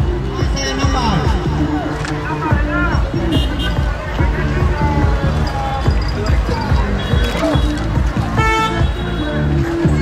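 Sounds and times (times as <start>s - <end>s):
crowd voices: 0.0s - 10.0s
loud dance music over loudspeaker: 0.0s - 10.0s.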